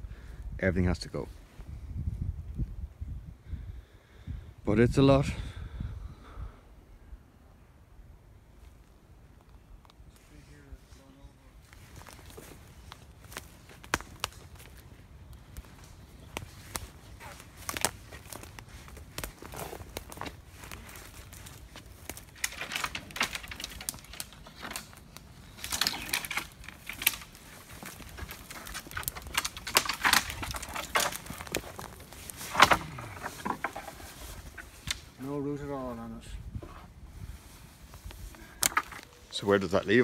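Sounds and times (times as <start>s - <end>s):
footsteps crunching over twigs: 8.6s - 40.0s
dead wood cracking and snapping: 11.6s - 35.2s, 38.0s - 39.4s.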